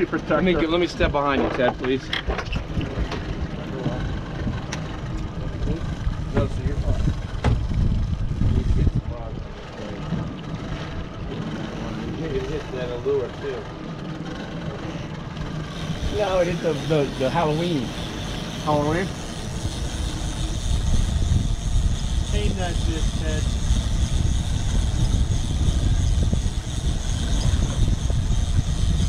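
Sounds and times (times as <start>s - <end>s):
outboard motors running: 0.0s - 29.0s.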